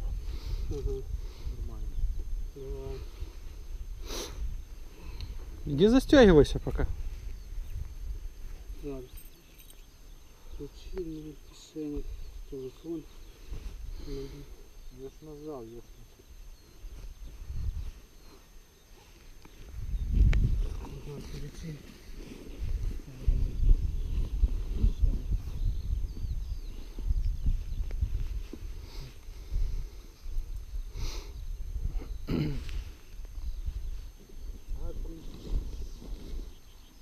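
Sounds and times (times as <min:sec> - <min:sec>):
wind buffeting microphone: 0:17.2 - 0:18.0, 0:19.5 - 0:37.0.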